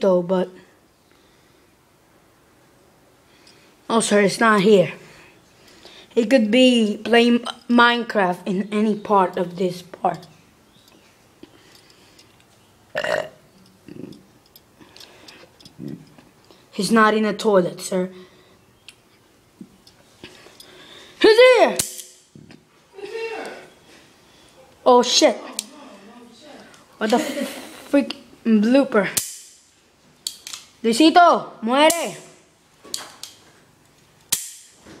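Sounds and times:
sharp cracks: 21.7 - 22.3, 29.1 - 30.8, 34.2 - 34.8
sharp click: 34.3 - 34.8.

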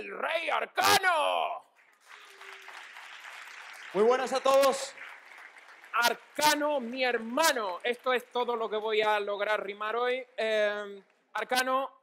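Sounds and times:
audience applauding: 1.8 - 9.7
man speaking: 6.0 - 12.0.

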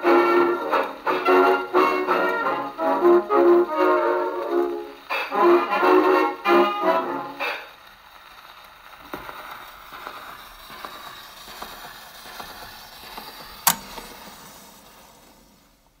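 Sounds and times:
record surface hiss: 0.0 - 16.0
soft record clicks: 0.6 - 5.2, 7.4 - 15.1
sharp loud click: 13.6 - 14.4.

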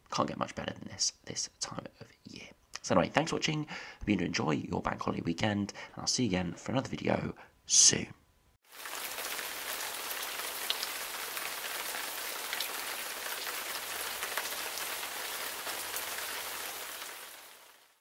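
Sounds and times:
steady rain falling: 8.7 - 18.0.

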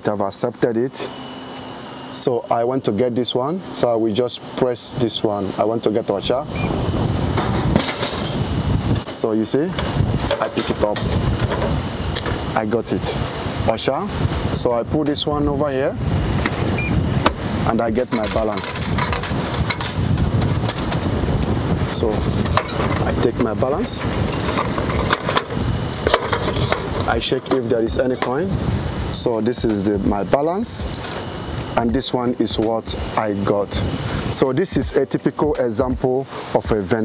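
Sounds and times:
wind buffeting microphone: 6.2 - 36.8
short electronic beep: 16.8 - 17.0
coins clinking: 30.8 - 31.2.

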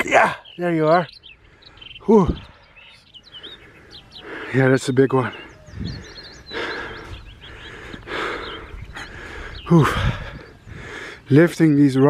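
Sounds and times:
small birds chirping: 0.0 - 12.0
man breathing hard: 1.4 - 11.3.

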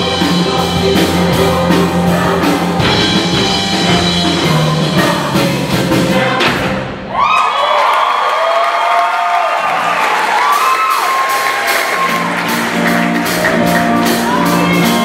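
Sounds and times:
choir singing sustained chords: 0.0 - 7.0
backing band: 0.0 - 7.3, 9.7 - 15.0.

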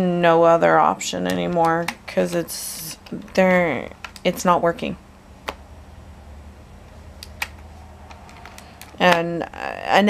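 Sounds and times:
low steady hum: 0.0 - 10.0
laptop clicks: 7.2 - 9.3.

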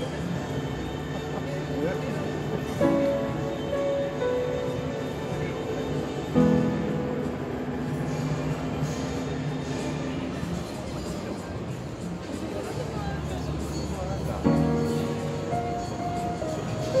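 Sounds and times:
upright piano playing: 0.0 - 9.7, 14.0 - 17.0.

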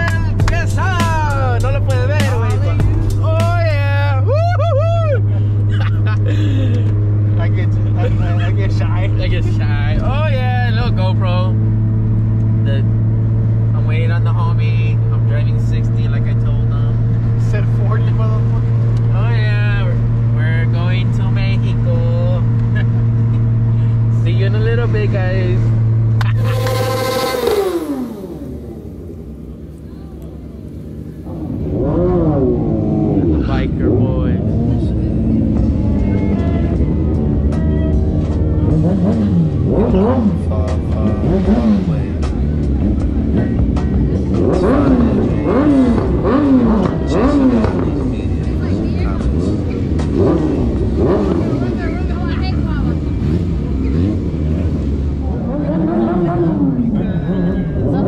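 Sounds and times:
car engine and road drone: 0.0 - 58.0
loud rush with falling pitch: 26.4 - 29.2
voices: 44.4 - 58.0.

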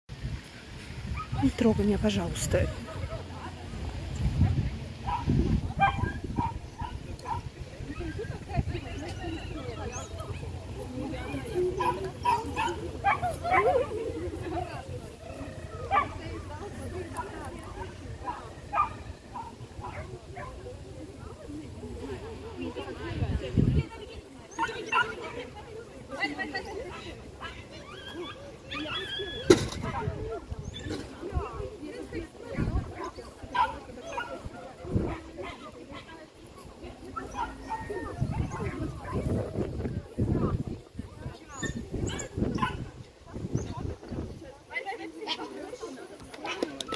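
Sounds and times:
small dog yipping: 5.1 - 8.4, 27.4 - 31.6, 37.2 - 39.2, 41.5 - 42.8.

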